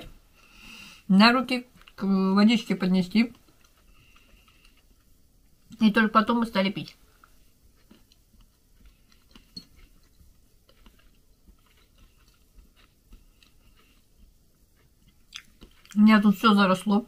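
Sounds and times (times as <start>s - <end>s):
chewing food: 1.4s - 17.0s.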